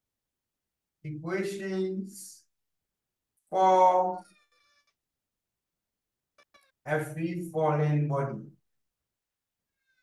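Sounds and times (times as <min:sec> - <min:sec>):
man speaking drawn-out word: 0:03.5 - 0:04.2.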